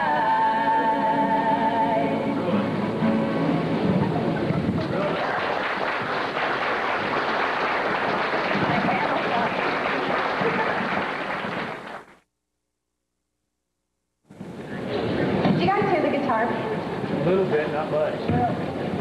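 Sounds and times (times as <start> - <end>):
voices singing: 0.0 - 2.8
acoustic guitar: 0.0 - 5.6
audience applauding: 4.4 - 12.2.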